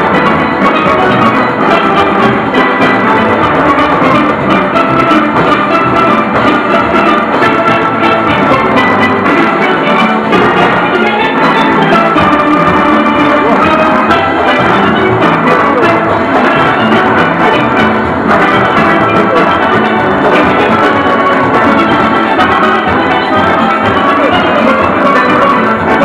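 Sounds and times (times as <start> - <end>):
drum and percussion beat: 0.0 - 26.0
steelpans playing melody: 0.0 - 26.0.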